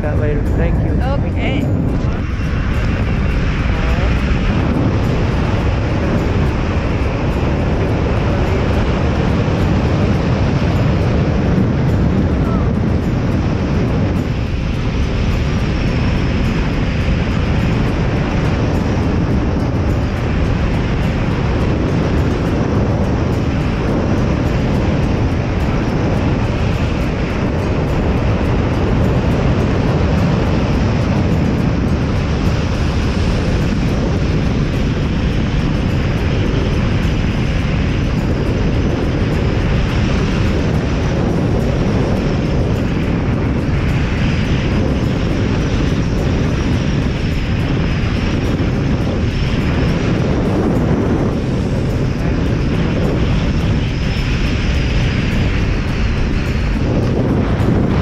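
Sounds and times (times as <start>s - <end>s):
wind noise on microphone: 0.0s - 58.0s.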